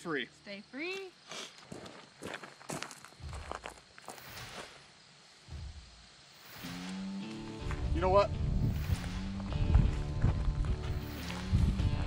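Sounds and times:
footsteps on gravelly dirt: 0.9 - 4.9, 6.7 - 8.0, 8.6 - 12.0.

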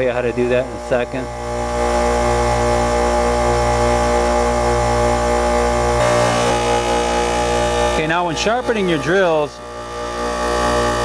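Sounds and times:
bench grinder motor whine: 0.0 - 11.0.

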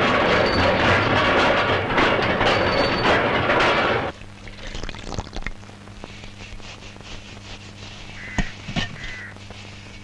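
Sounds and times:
printing machine clatter: 0.0 - 4.1.

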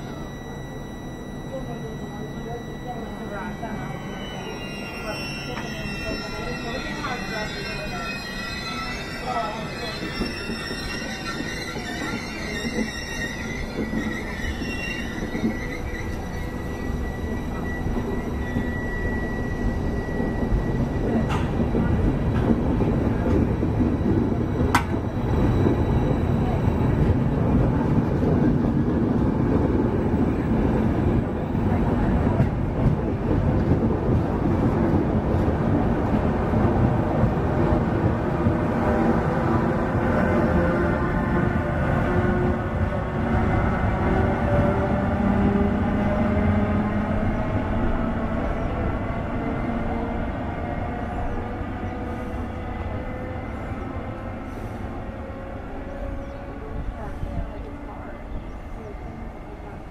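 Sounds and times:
train wheel squeal: 0.0 - 34.1, 37.0 - 59.9
train wheels rumbling on rails: 4.4 - 59.9.

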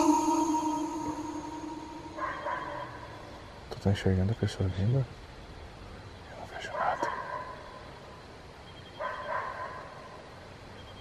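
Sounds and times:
dog barking: 2.2 - 3.1, 6.7 - 7.8, 9.0 - 10.2.

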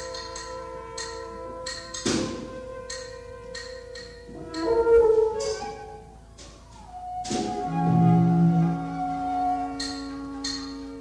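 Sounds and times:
light percussion strokes: 0.0 - 11.0
sustained wind and string tones: 0.0 - 11.0.

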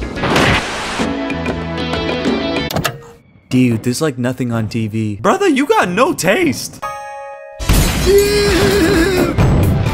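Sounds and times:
cartoon explosion: 0.2 - 1.0.

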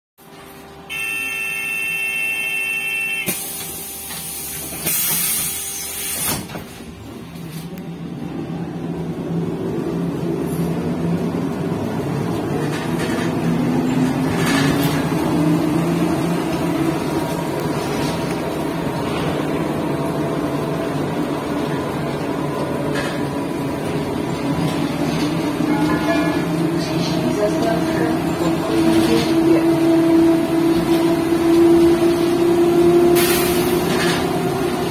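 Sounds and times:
door warning tone: 0.9 - 3.6
doors closing with hiss: 3.2 - 6.8.

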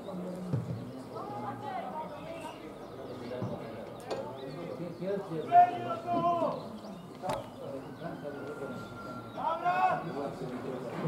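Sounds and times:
people shouting and calling: 5.4 - 6.8, 9.3 - 10.2.

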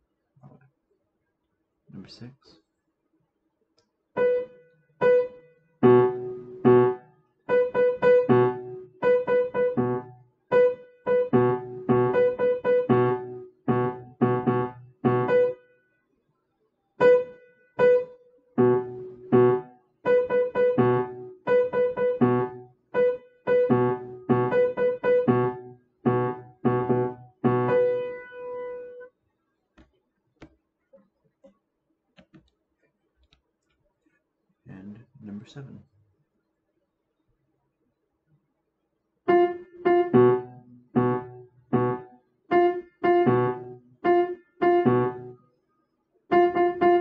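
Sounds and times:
upright piano playing: 4.2 - 15.6, 17.8 - 29.1, 39.3 - 45.4, 46.3 - 47.0.

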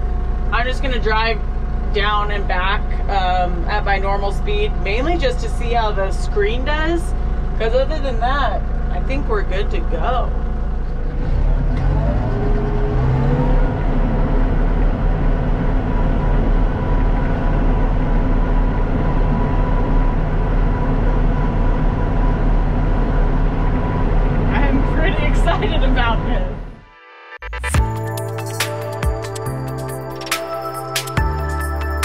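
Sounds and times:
tractor engine running: 0.0 - 26.8, 27.6 - 32.0.

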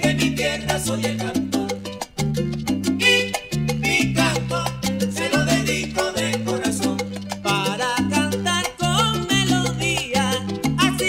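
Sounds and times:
instrumental salsa music: 0.0 - 11.0.

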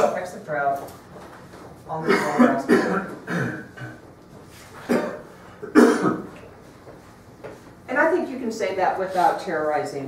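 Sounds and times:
person coughing sharply: 2.0 - 4.0, 4.8 - 6.3.

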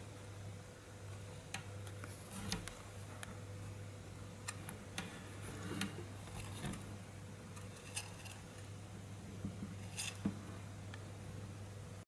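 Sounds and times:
steady low hum: 0.0 - 12.0
hamster clicks and rustles: 7.5 - 8.7, 9.5 - 10.4.

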